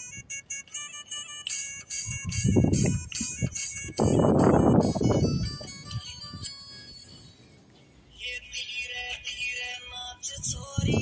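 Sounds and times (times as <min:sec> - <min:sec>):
high quick melody: 0:00.0 - 0:07.2.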